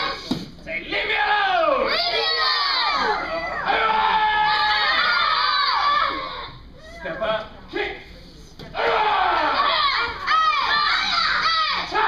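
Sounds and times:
children shouting: 0:01.6 - 0:07.2, 0:08.8 - 0:12.0.

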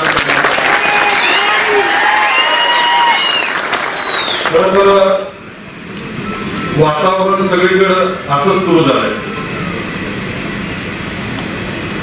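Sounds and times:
crowded hall background noise: 0:00.0 - 0:12.0.

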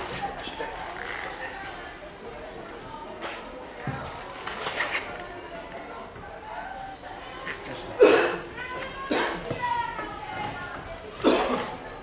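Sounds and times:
quiet indistinct talking: 0:00.0 - 0:12.0.

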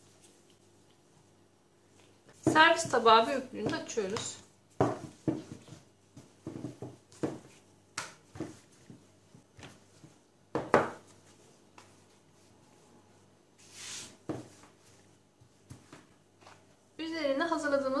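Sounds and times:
soft swish of dough: 0:00.0 - 0:03.2, 0:03.9 - 0:10.4, 0:11.0 - 0:17.0
rolling pin knocking on dough: 0:02.4 - 0:09.1, 0:10.5 - 0:11.1.

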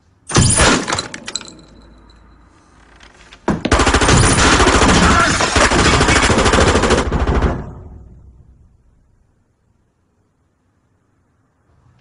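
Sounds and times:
automatic gunfire: 0:03.7 - 0:07.7.

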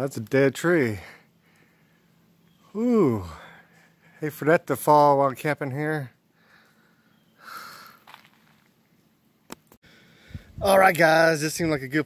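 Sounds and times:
soft breath close to microphone: 0:09.9 - 0:10.6.

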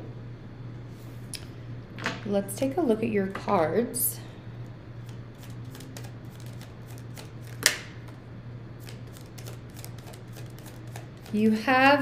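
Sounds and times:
cards being shuffled: 0:05.4 - 0:08.2, 0:08.8 - 0:11.4.

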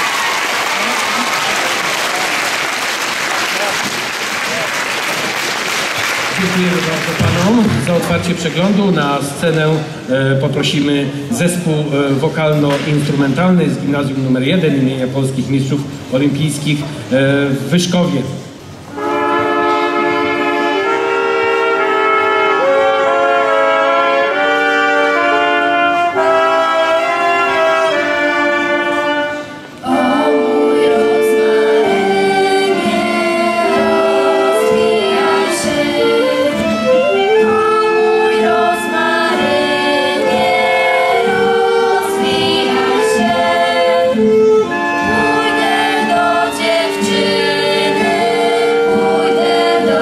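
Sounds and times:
acoustic guitar: 0:06.4 - 0:50.0
children's choir singing: 0:18.9 - 0:50.0.

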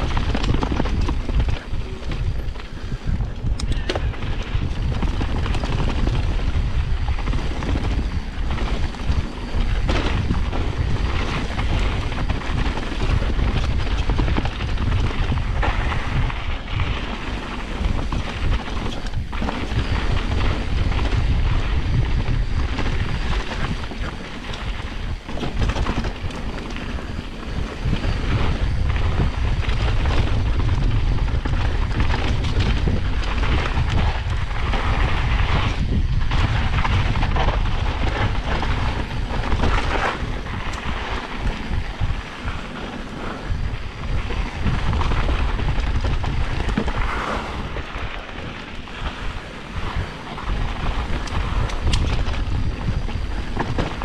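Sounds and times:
bike knocking and rattling: 0:00.0 - 0:54.0
wind and tyre rumble: 0:00.0 - 0:54.0.

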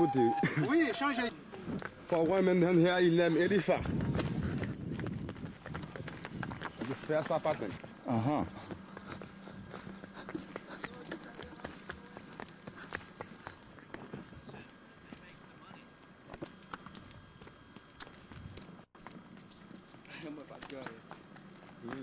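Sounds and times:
footfalls on stony trail: 0:03.8 - 0:07.9
hoof clacks on stone: 0:04.1 - 0:07.8, 0:08.6 - 0:14.3
faint voices: 0:08.0 - 0:13.0.

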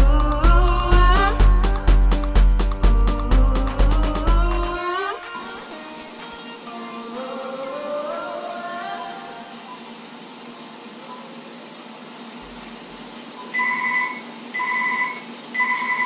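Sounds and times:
music: 0:00.0 - 0:09.8
telephone ringing electronic trill: 0:13.5 - 0:16.0.

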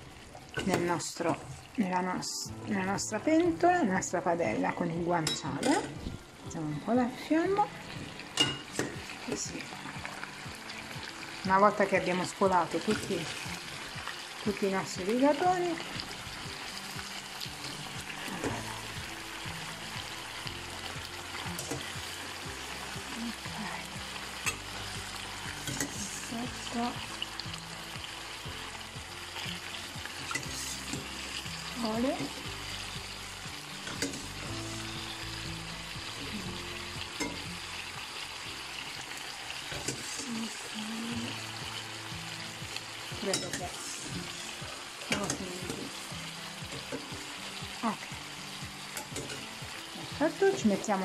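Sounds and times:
pasta sizzling in a frying pan: 0:00.0 - 0:51.0.

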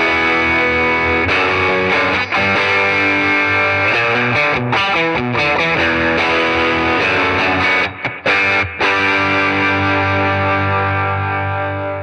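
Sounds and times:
overdriven electric guitar chords: 0:00.0 - 0:12.0.

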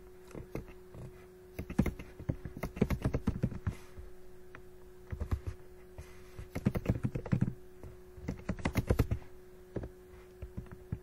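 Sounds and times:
typing on computer keyboard: 0:01.6 - 0:03.6, 0:06.5 - 0:07.6, 0:08.2 - 0:09.2.

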